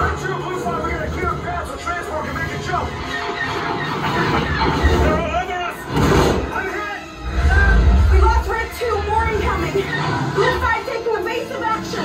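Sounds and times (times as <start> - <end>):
soundtrack music: 0.0 - 12.0
deep rumbling: 7.2 - 10.3.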